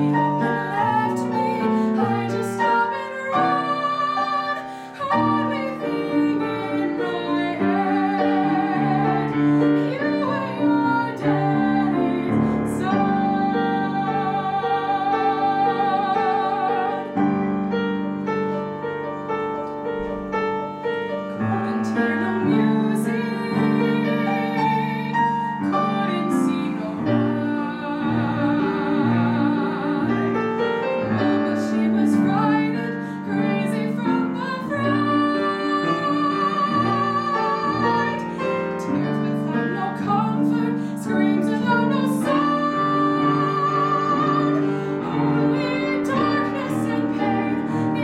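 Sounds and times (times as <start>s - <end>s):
woman singing with vibrato: 0.0s - 17.4s, 21.4s - 48.0s
piano repeated chords: 0.0s - 48.0s.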